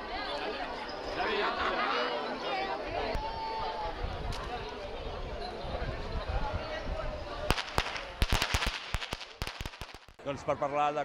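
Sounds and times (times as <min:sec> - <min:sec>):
firecrackers cracking: 0:07.5 - 0:10.2.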